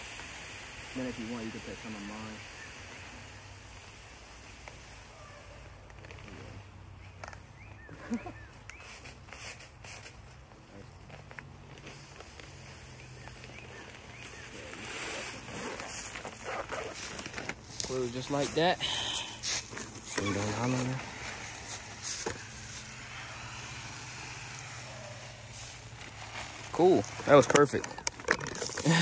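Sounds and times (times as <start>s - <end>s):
seed rustling and pattering: 1.1s - 29.0s.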